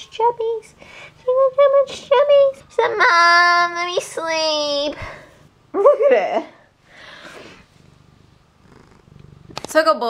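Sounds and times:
cat purring: 7.4s - 9.8s.

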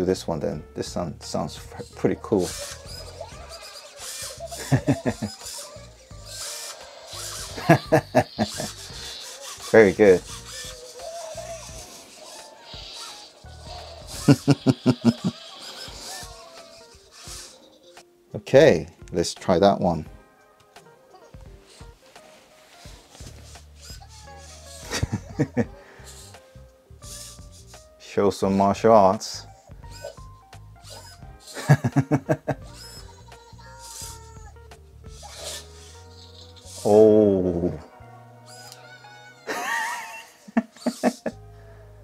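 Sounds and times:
chirpy robot sounds: 1.4s - 18.1s, 23.4s - 26.4s, 27.0s - 27.8s, 29.5s - 41.4s
motors whirring: 1.6s - 18.0s, 23.1s - 26.4s, 27.0s - 27.8s, 29.6s - 37.2s, 38.5s - 41.4s.

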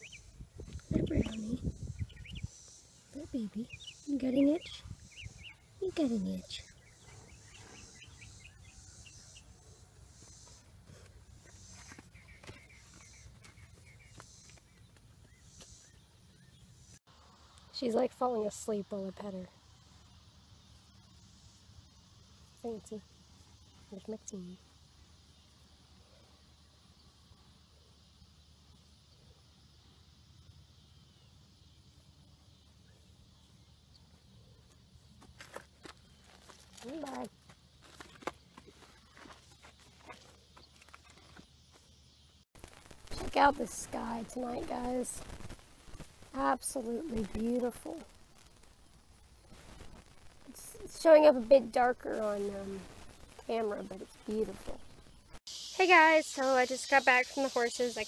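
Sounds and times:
small birds chirping: 0.0s - 58.0s.

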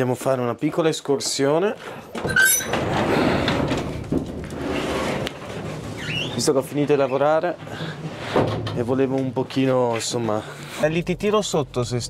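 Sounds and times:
garage door scraping: 2.1s - 10.4s
garage door squeak: 2.2s - 3.5s, 4.6s - 8.8s.

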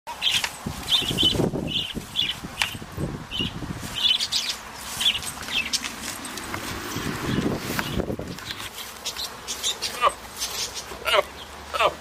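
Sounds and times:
fur rubbing against camera: 4.8s - 10.8s.

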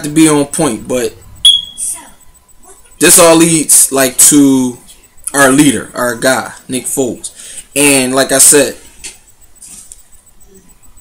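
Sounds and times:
short high-pitched chirp: 1.4s - 2.0s.

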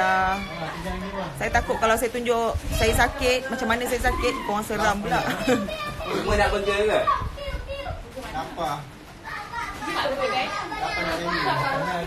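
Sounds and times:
children's voices: 0.3s - 8.2s, 9.2s - 12.0s.

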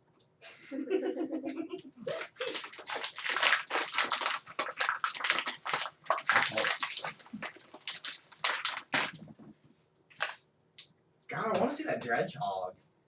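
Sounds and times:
plastic packaging crinkling and tearing: 2.0s - 9.4s.

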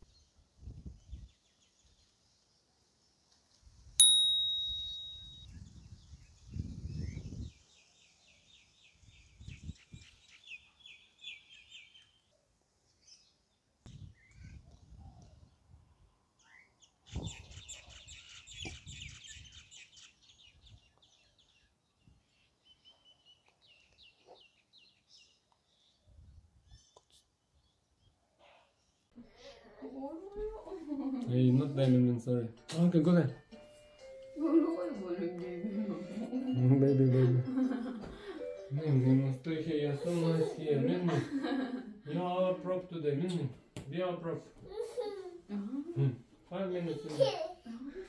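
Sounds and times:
bright ding: 4.0s - 5.5s
birds chirping and trilling: 5.5s - 12.3s, 16.4s - 27.0s.

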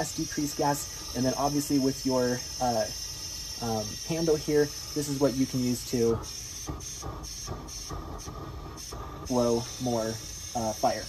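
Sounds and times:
propane torch hissing: 0.0s - 11.0s.

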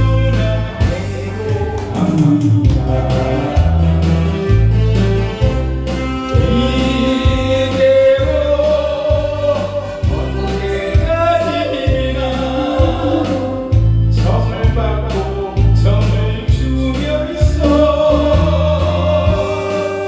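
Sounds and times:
karaoke backing track with bass beat: 0.0s - 20.0s
man singing into microphone: 6.3s - 20.0s.

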